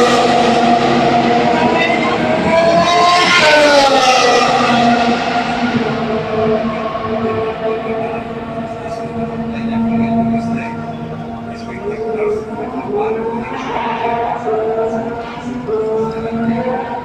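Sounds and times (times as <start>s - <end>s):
racing car engines passing: 0.0s - 17.0s.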